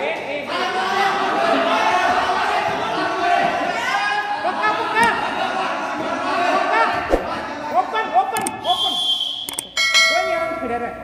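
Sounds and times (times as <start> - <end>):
button click: 9.5 - 9.7
bright bell chime: 9.8 - 11.0.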